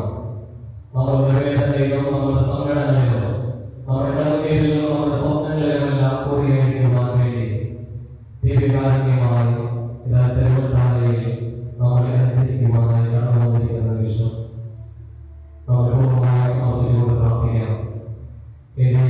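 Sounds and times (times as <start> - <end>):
person chanting a prayer: 0.0 - 19.0.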